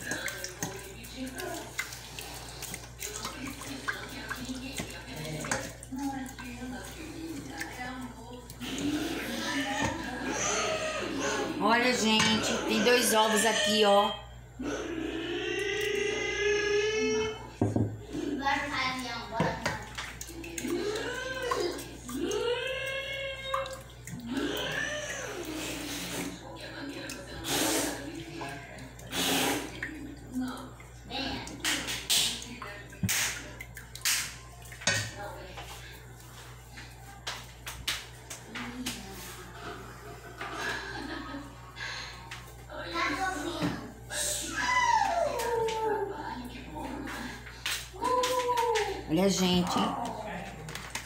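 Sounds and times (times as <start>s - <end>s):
liquid sloshing in a pot: 0.0s - 13.4s, 17.2s - 44.4s.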